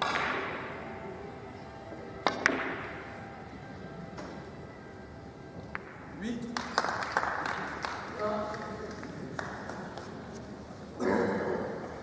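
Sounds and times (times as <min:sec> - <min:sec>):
cue striking billiard ball: 0:02.2 - 0:03.0.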